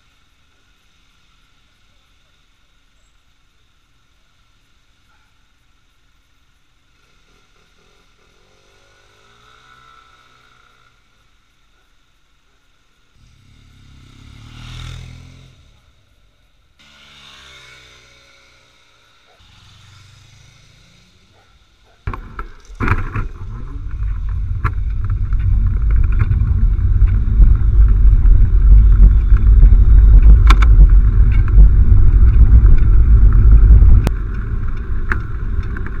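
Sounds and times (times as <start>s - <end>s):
faint street traffic: 0.0s - 36.0s
road vibration rumble: 3.7s - 36.0s
motor scooter passing by: 7.0s - 11.0s, 13.2s - 16.0s, 16.8s - 21.8s
wind buffeting microphone: 22.1s - 36.0s
sharp clicks: 24.6s - 36.0s.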